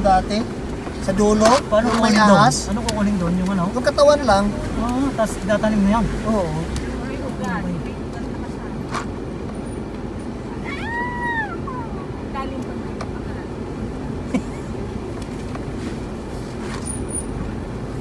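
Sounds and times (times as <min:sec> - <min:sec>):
vehicle rumbling on dirt track: 0:00.0 - 0:10.7, 0:11.6 - 0:18.0.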